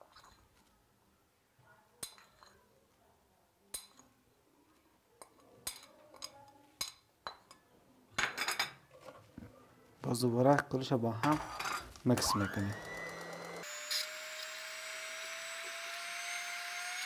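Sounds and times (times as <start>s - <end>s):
spoon clattering: 2.0s - 2.6s
spoon clinking on porcelain bowl: 2.0s - 2.6s.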